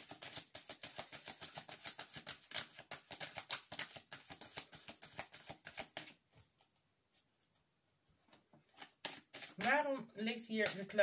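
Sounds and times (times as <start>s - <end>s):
cards being shuffled: 0.0s - 6.2s, 8.3s - 9.9s.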